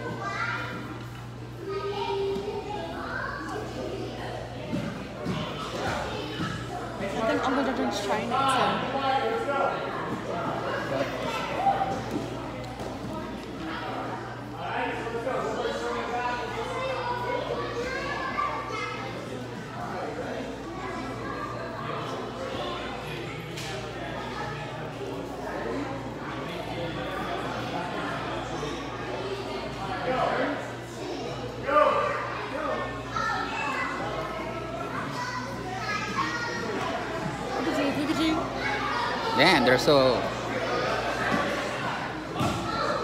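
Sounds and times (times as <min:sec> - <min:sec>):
children chattering: 0:00.0 - 0:43.0.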